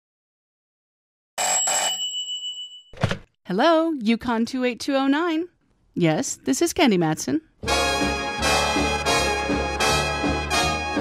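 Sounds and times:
telephone bell ringing: 0:01.4 - 0:03.0.

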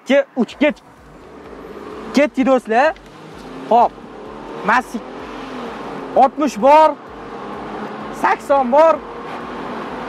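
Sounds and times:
car engine accelerating: 0:00.5 - 0:10.0.

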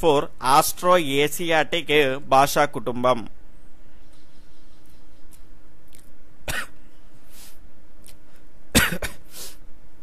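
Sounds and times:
man coughing: 0:06.5 - 0:06.8, 0:08.7 - 0:09.4
breath in: 0:07.2 - 0:07.6.

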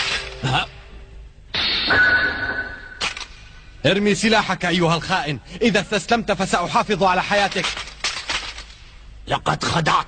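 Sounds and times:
short sharp hit: 0:01.5 - 0:03.2
metallic sword ring: 0:01.6 - 0:03.2.

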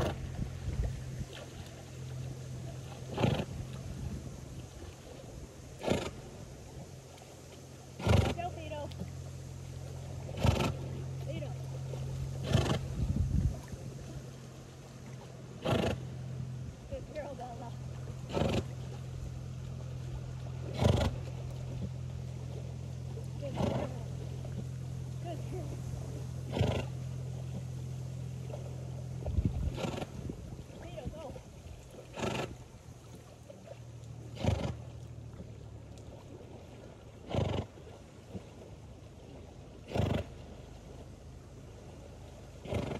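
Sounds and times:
horse blowing out breaths: 0:00.0 - 0:00.4, 0:03.0 - 0:03.7, 0:05.8 - 0:06.3, 0:08.0 - 0:08.5, 0:10.2 - 0:11.0, 0:12.4 - 0:13.2, 0:15.6 - 0:16.1, 0:18.2 - 0:18.9, 0:20.7 - 0:21.3, 0:26.4 - 0:27.0, 0:29.4 - 0:30.3, 0:32.1 - 0:32.6, 0:34.3 - 0:34.8, 0:37.2 - 0:37.8, 0:39.8 - 0:40.3, 0:42.6 - 0:42.9
steady low hum: 0:00.0 - 0:42.9.

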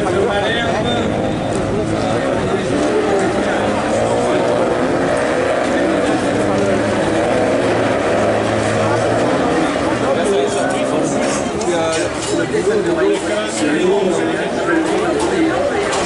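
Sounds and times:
commentator talking: 0:00.0 - 0:16.0
racing car engines: 0:00.0 - 0:16.0.

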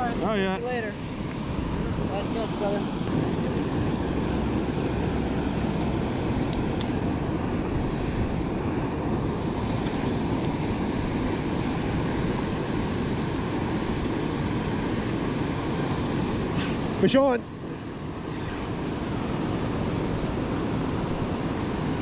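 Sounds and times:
water rushing from spillway: 0:00.0 - 0:22.0.

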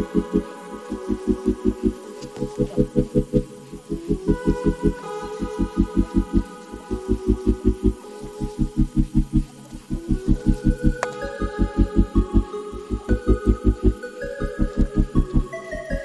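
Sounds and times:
music with pulsing bass beat: 0:00.0 - 0:16.0.

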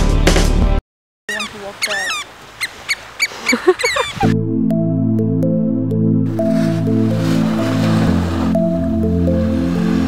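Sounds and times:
birds chirping: 0:01.3 - 0:04.3
slow background music: 0:04.2 - 0:10.0.

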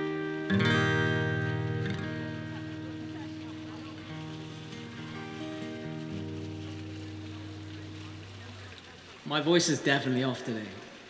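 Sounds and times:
acoustic guitar notes picked: 0:00.0 - 0:08.9.

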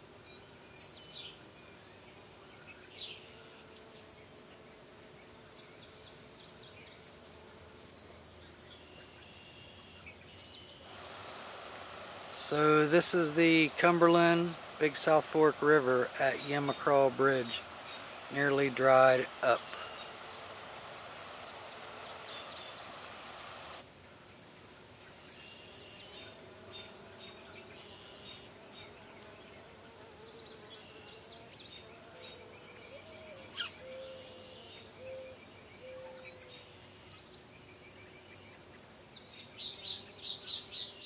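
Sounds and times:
crickets trilling: 0:00.0 - 0:41.0
short low calls: 0:10.9 - 0:23.8
soft rush: 0:10.9 - 0:23.8.

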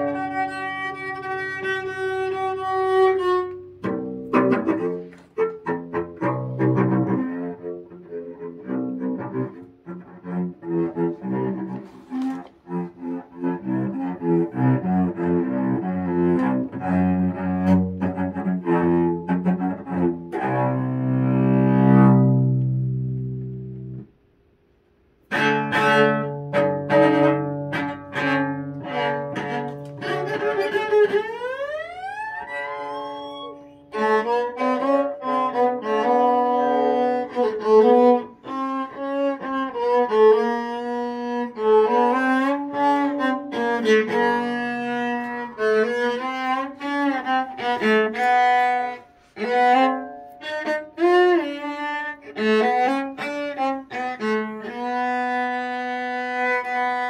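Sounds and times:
cello bowed notes: 0:00.0 - 0:24.2, 0:25.2 - 0:57.0.

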